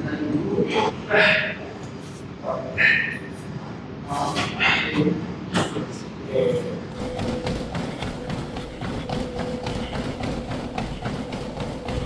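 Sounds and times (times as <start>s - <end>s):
running footfalls on treadmill belt: 6.9s - 12.0s
treadmill motor whine: 6.9s - 12.0s.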